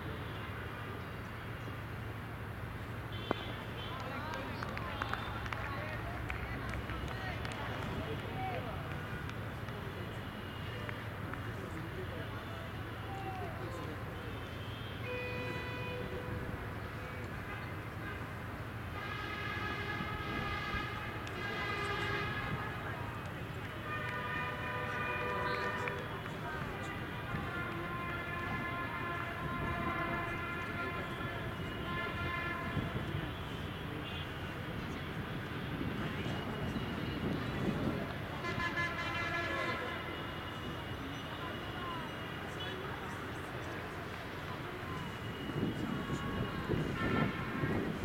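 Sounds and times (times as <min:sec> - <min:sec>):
horn sounding: 0:23.8 - 0:34.2, 0:45.0 - 0:48.0.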